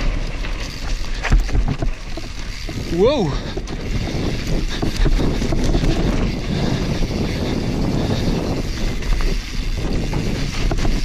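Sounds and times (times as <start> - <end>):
bike knocks and rattles: 0.0 - 11.0
bike tyres skidding over dirt: 0.0 - 11.0
wind on microphone: 0.6 - 11.0.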